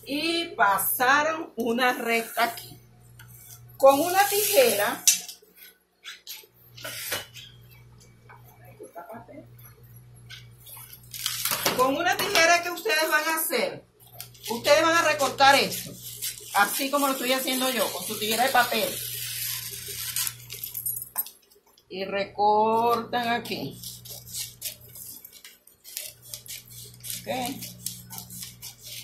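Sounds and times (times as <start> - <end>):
low electrical hum: 0.0 - 29.0
paper sheets rustling: 14.2 - 20.8.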